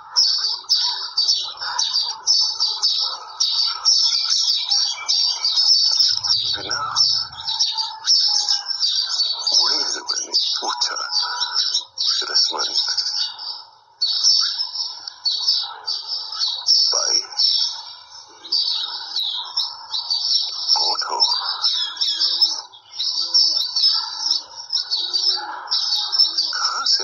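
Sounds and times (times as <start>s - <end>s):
flock of small birds chirping: 0.0s - 27.0s.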